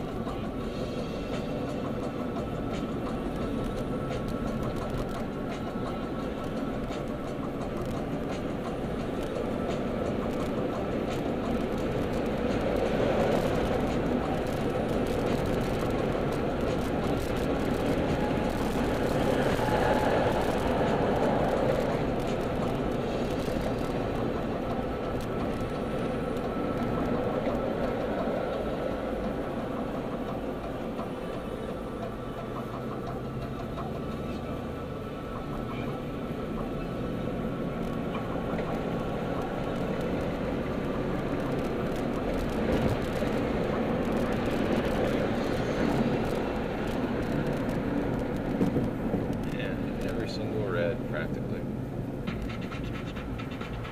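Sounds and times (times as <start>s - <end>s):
car road noise: 0.0s - 53.9s.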